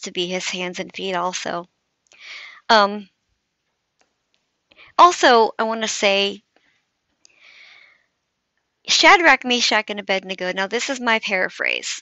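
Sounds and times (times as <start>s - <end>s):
woman's faint intake of breath: 7.4s - 8.1s.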